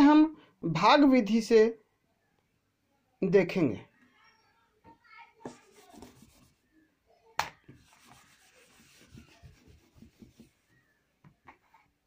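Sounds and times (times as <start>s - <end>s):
cloth scrubbing a whiteboard: 5.5s - 6.7s, 7.7s - 11.0s.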